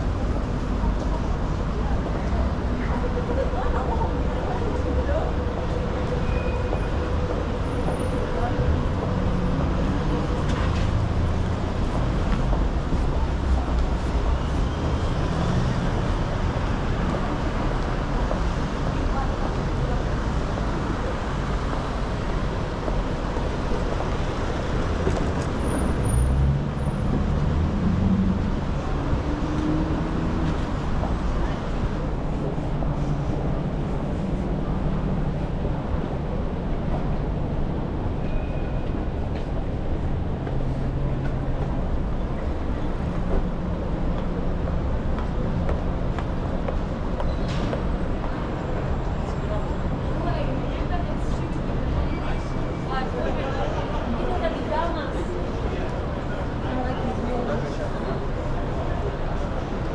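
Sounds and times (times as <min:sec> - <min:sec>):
passers-by talking: 0:00.0 - 0:38.2, 0:38.9 - 0:59.9
road traffic rumble: 0:00.0 - 0:59.9.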